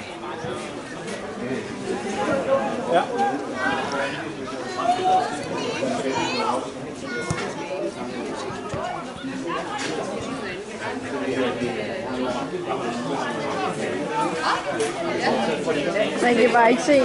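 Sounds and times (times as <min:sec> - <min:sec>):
overlapping chatter: 0:00.0 - 0:17.0.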